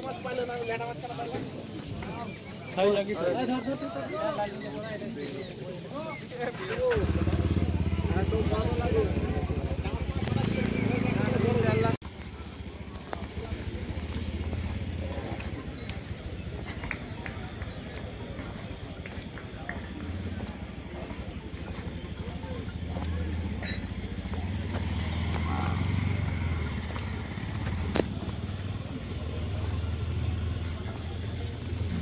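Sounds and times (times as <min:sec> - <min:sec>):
footsteps on dirt path: 0:00.0 - 0:07.6, 0:12.0 - 0:32.0.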